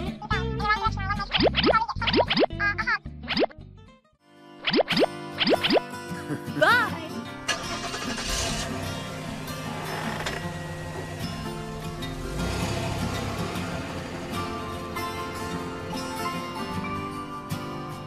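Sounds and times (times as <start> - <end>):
background music: 0.0 - 18.0
cartoon car engine: 7.5 - 17.1.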